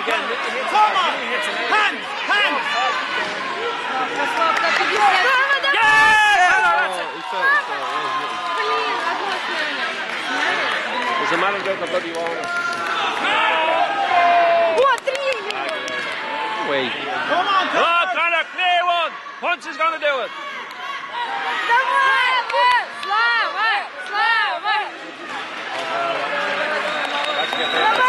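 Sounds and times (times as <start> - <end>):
supporters shouting encouragement: 0.0 - 11.6, 12.5 - 28.0
crowd noise: 0.0 - 28.0.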